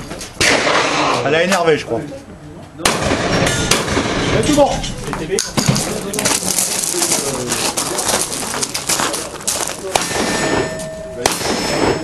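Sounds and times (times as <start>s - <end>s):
clattering movement: 5.1s - 11.0s
handgun shots: 9.8s - 10.6s
steel target ringing: 9.8s - 12.0s.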